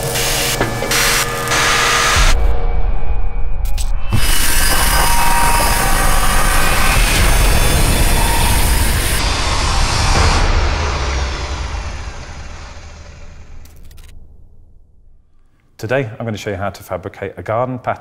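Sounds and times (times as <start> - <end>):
angle grinder grinding steel: 4.1 - 13.7.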